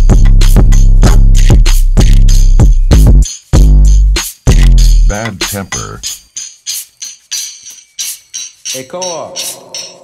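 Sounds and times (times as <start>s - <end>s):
bright percussion hits: 4.4s - 10.0s.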